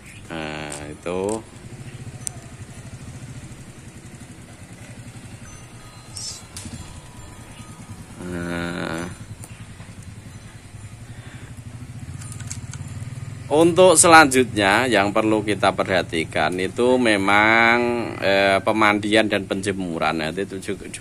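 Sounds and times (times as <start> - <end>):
motorcycle engine idling: 0.0 - 21.0
short high chirp: 5.4 - 7.8.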